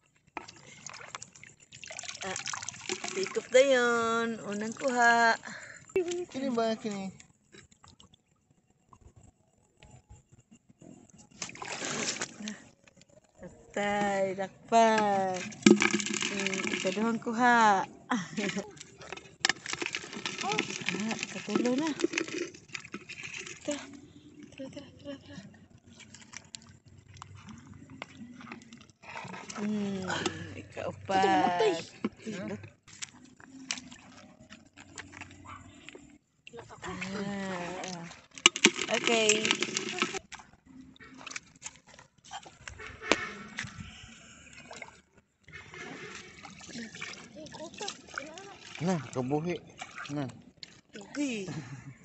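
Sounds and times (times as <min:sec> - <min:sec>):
seawater trickling and dripping: 0:00.0 - 0:51.6
small water splashes: 0:00.2 - 0:08.2, 0:11.3 - 0:12.8, 0:14.8 - 0:30.6, 0:32.9 - 0:51.4.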